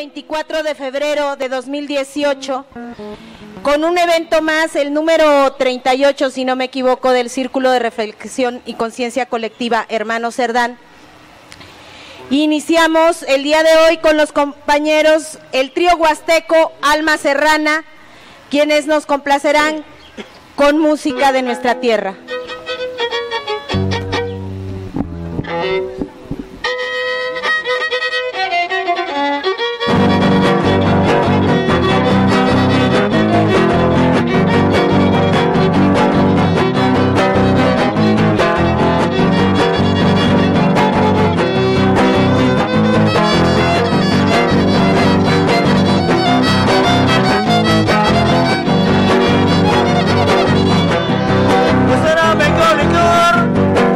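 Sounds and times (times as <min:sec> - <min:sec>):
guitars strumming: 0:02.7 - 0:04.0, 0:22.2 - 0:53.9
fiddle: 0:22.2 - 0:52.1.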